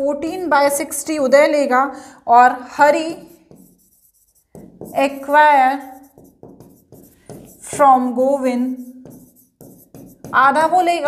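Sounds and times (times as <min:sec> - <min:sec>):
woman speaking: 0:00.0 - 0:03.4, 0:04.9 - 0:06.1, 0:07.7 - 0:08.9, 0:10.3 - 0:11.0
stylus scratching on glass: 0:03.0 - 0:10.9.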